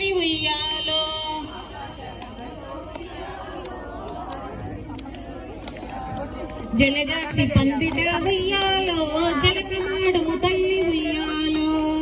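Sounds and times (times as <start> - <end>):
women chattering: 0.0 - 12.0
rhythmic handclaps: 1.4 - 12.0.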